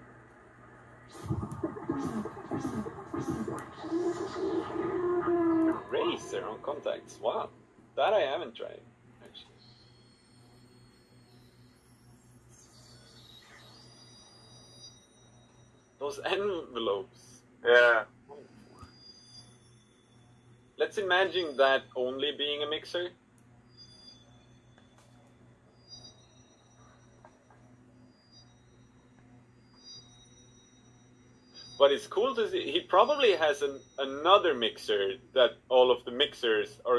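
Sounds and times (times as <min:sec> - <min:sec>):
low hum: 0:00.0 - 0:22.7
faint high held tones: 0:00.0 - 0:35.4.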